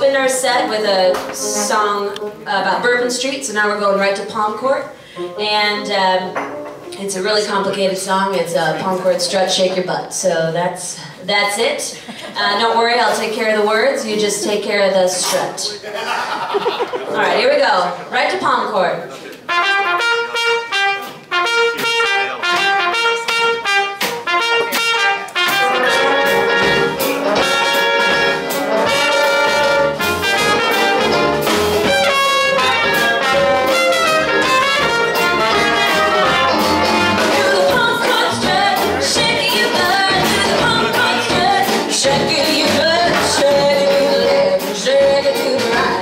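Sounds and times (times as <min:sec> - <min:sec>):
jazz band playing: 0:00.0 - 0:15.8, 0:16.5 - 0:46.0.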